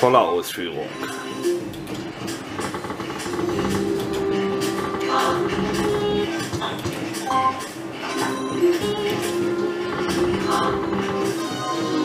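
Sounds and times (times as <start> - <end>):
synthesized slot machine music: 0.0 - 2.5, 3.2 - 12.0.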